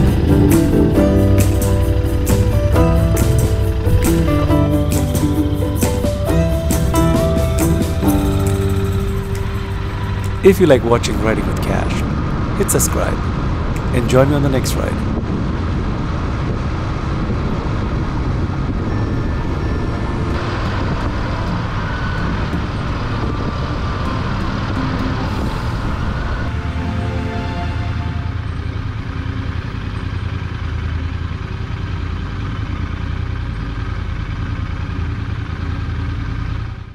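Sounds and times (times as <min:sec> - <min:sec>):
motorcycle engine running: 0:00.0 - 0:14.0, 0:15.0 - 0:26.8, 0:28.0 - 0:36.9
wind noise: 0:00.0 - 0:29.9
road noise: 0:00.0 - 0:36.9.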